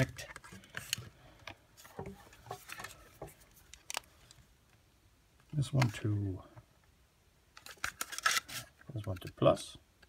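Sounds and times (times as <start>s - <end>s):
plastic handling clicks and rustles: 0.0s - 4.8s, 5.4s - 6.0s, 7.5s - 10.0s.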